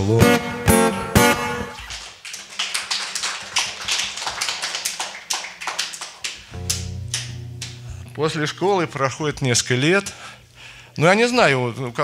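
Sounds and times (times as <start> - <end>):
scattered clapping: 1.8 - 7.8
acoustic guitar chord: 6.6 - 8.2.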